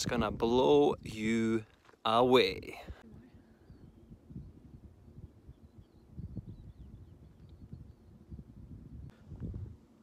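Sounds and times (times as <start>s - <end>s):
wind buffeting microphone: 0.0s - 1.7s, 2.5s - 10.0s
faint bird chirps: 3.1s - 8.6s.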